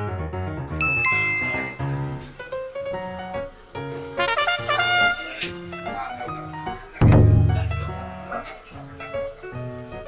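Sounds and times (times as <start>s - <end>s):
background music: 0.0s - 10.0s
bright two-tone chime: 0.8s - 2.0s.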